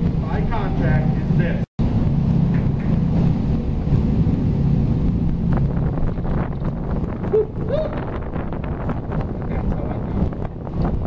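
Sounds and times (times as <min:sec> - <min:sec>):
speedboat engine droning: 0:00.0 - 0:11.0
wind buffeting microphone: 0:00.0 - 0:11.0.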